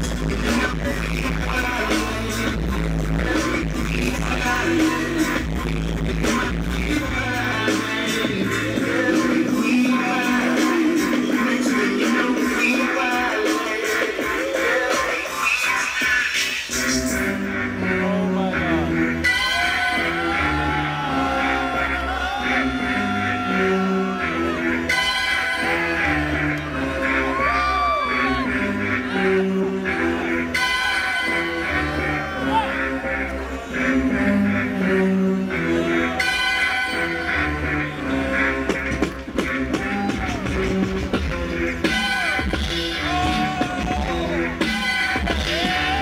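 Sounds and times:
dj electronic music: 0:00.0 - 0:46.0.

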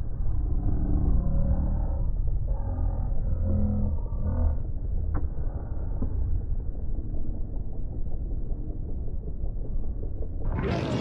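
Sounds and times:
low rumble: 0:00.0 - 0:11.0.

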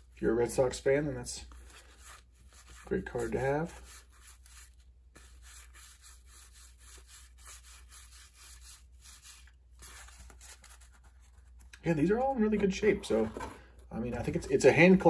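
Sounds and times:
cardboard cards rustling: 0:01.4 - 0:05.8, 0:08.5 - 0:14.5.

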